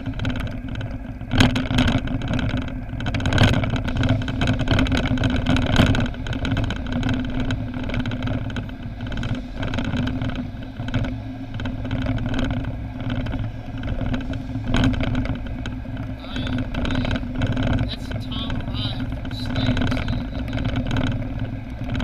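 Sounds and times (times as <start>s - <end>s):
car engine and tyre rumble: 0.0s - 22.0s.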